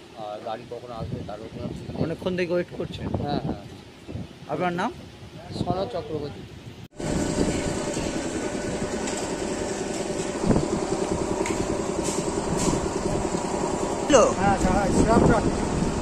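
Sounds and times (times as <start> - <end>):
motor hum tones: 7.0 - 16.0
train rumble: 7.0 - 16.0
man speaking: 14.1 - 15.4.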